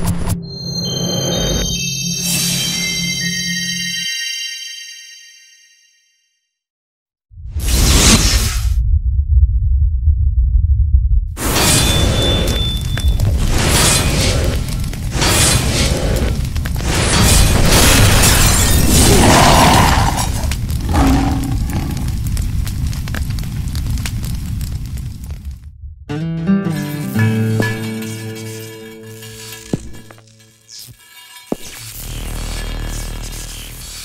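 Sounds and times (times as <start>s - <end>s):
fire rumbling and crackling: 7.6s - 26.1s
deep low rumble: 8.4s - 11.4s, 20.4s - 26.1s.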